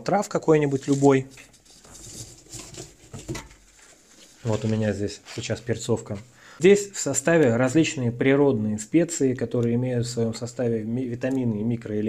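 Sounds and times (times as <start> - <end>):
clothing rubbing on microphone: 0.7 - 6.3.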